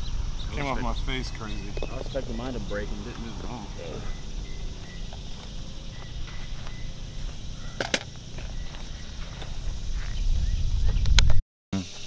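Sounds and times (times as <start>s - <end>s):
wind rumbling on microphone: 0.0s - 11.4s.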